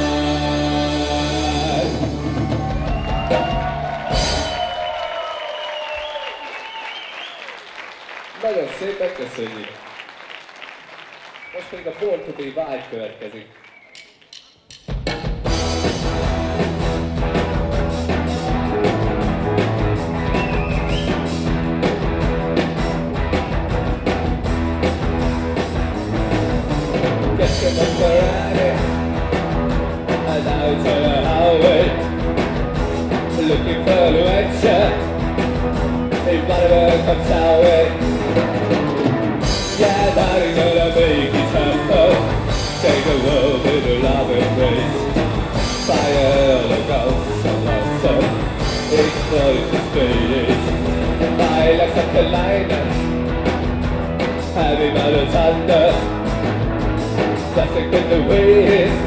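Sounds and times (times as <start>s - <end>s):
live rock band: 0.0s - 7.2s, 14.8s - 59.0s.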